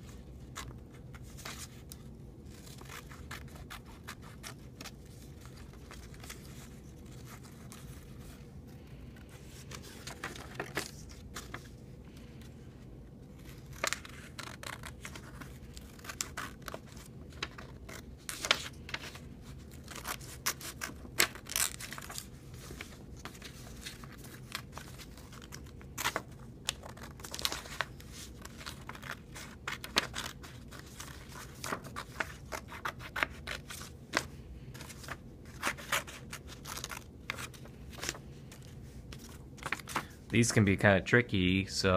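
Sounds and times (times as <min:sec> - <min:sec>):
paper rustling: 0:00.0 - 0:40.7.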